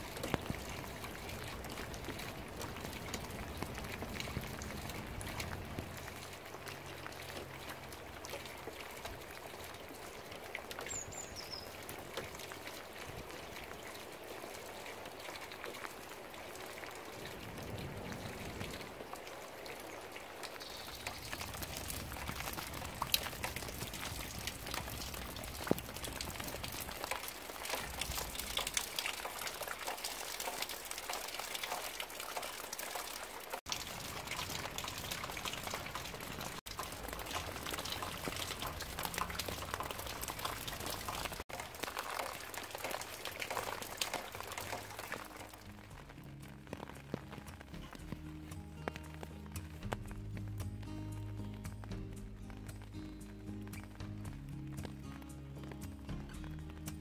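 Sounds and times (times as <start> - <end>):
rain falling: 0.0 - 57.0
raindrops tapping: 0.0 - 57.0.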